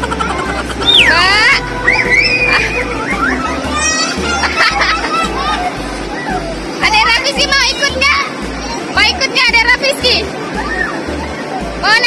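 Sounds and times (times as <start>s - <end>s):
children squealing: 0.9s - 1.3s.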